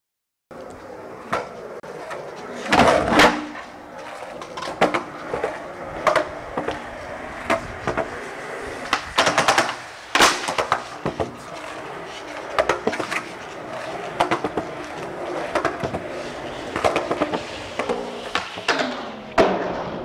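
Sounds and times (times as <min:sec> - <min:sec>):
skateboard clacking on ground: 0:00.5 - 0:20.0
skateboard wheels rolling: 0:00.5 - 0:20.0.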